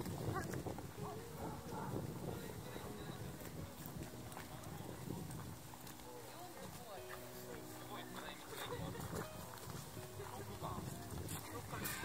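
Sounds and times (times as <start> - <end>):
faint crowd chatter: 0.0 - 12.0
footsteps on paved path: 0.0 - 12.0.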